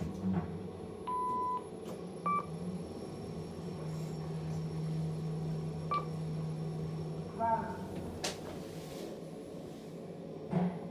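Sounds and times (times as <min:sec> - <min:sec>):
lift humming: 0:01.9 - 0:10.1.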